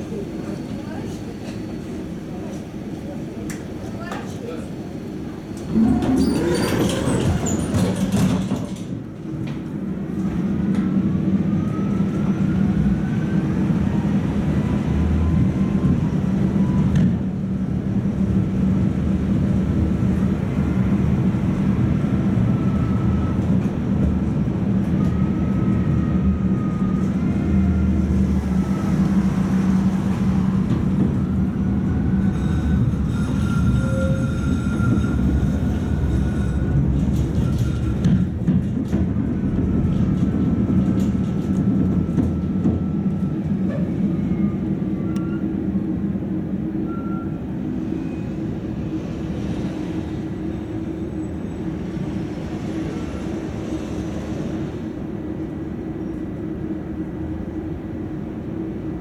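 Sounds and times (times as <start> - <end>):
tram motors and wheels humming: 0.0 - 59.0.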